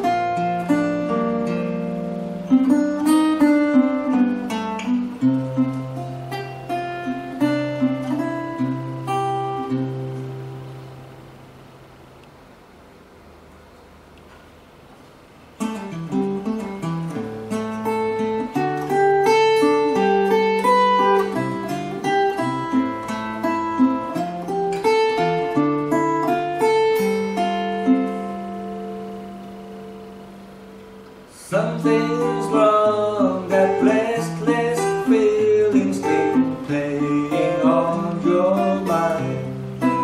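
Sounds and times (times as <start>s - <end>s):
faint steady hiss: 0.0s - 40.0s
low acoustic guitar note: 0.0s - 40.0s.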